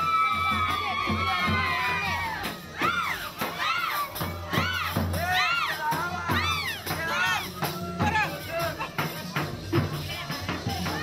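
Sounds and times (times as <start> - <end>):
children shouting and cheering: 0.0 - 9.5
band music with drum beat: 0.0 - 11.0.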